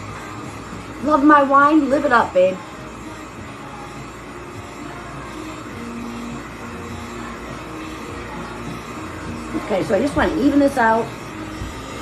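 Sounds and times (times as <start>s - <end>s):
heat gun blowing air: 0.0s - 12.0s.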